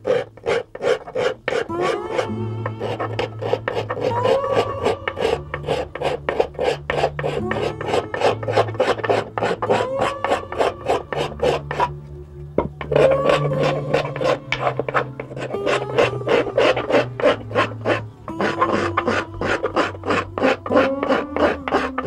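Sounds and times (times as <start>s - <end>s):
hand abrasive scraping wood: 0.0s - 12.0s, 12.6s - 22.0s.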